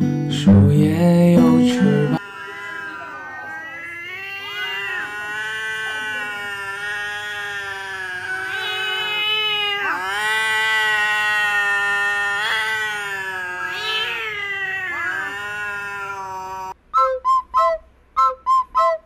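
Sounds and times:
cat yowling: 0:02.2 - 0:16.8
short whistled notes: 0:16.9 - 0:19.0.

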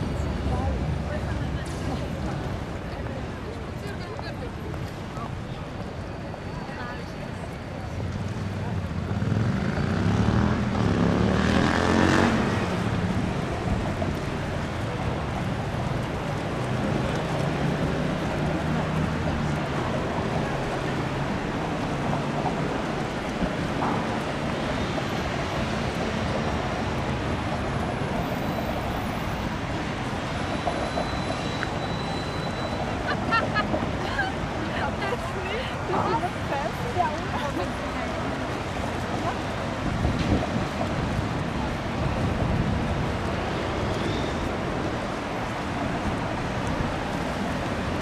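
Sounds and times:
city background noise: 0:00.0 - 0:48.0
passing rush: 0:07.9 - 0:48.0.

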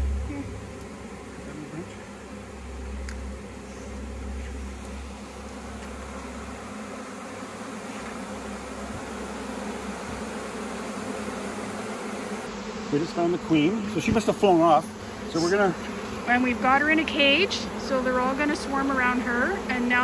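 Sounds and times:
low rumble: 0:00.0 - 0:06.6
bees buzzing: 0:00.0 - 0:20.0.

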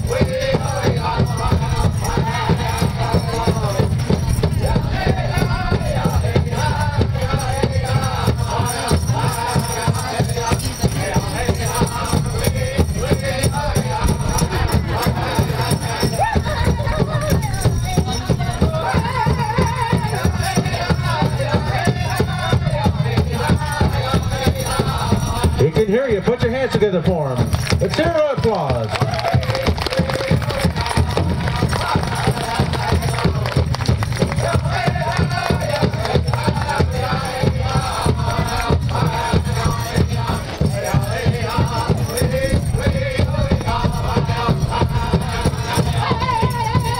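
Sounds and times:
high wavering chanted vocals: 0:00.0 - 0:25.6
group singing: 0:00.0 - 0:25.9, 0:28.9 - 0:46.9
steady drumbeat: 0:00.0 - 0:46.9.

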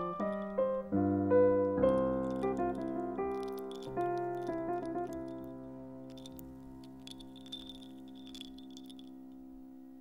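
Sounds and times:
faint clicks and ticks: 0:01.6 - 0:09.4.

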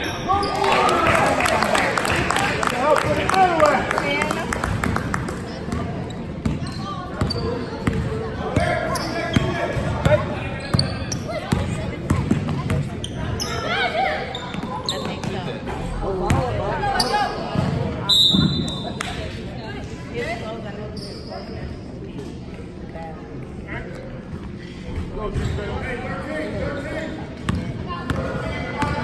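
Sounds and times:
spectators chattering: 0:00.0 - 0:29.0.

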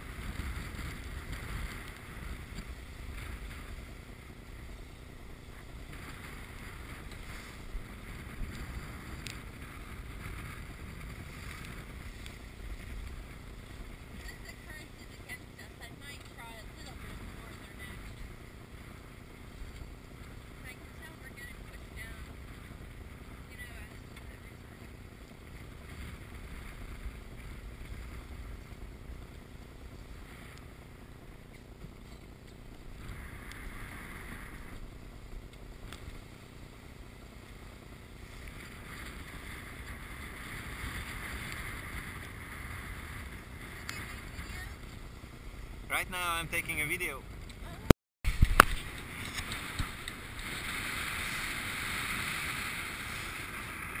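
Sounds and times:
wind on microphone: 0:00.0 - 0:54.0
water rushing past hull: 0:48.3 - 0:54.0.

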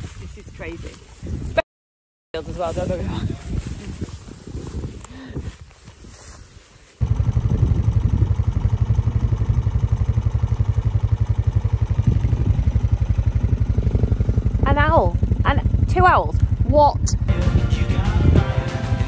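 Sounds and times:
soft rustling: 0:02.6 - 0:07.0
farm vehicle engine running: 0:07.0 - 0:19.0.

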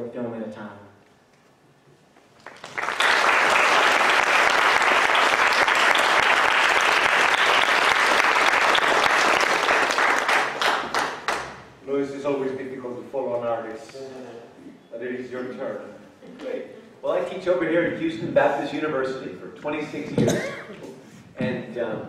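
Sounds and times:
audience applause: 0:02.4 - 0:11.6.

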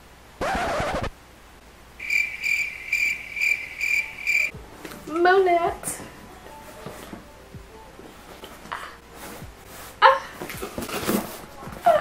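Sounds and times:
cricket chirping: 0:02.0 - 0:04.5.

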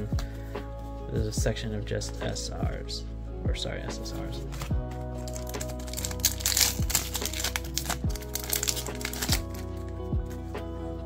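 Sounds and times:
background music with low beat: 0:00.0 - 0:11.0
cards being handled: 0:04.2 - 0:10.4
foil pack crinkling and tearing: 0:05.2 - 0:09.8.

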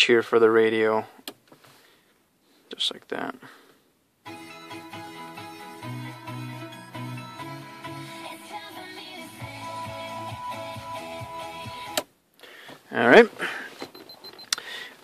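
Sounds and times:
music from car stereo: 0:04.2 - 0:12.1.

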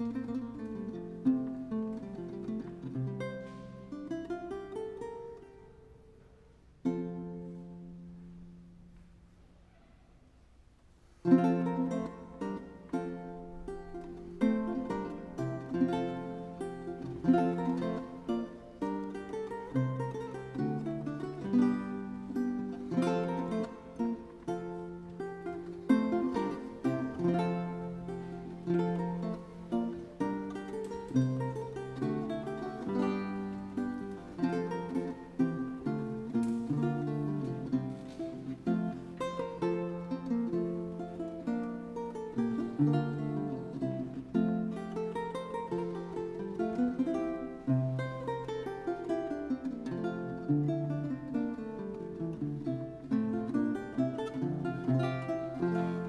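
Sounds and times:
solo lute playing: 0:00.0 - 0:56.0.

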